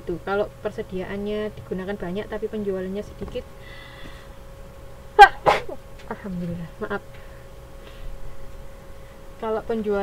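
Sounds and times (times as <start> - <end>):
person sneezing: 5.2 - 5.8.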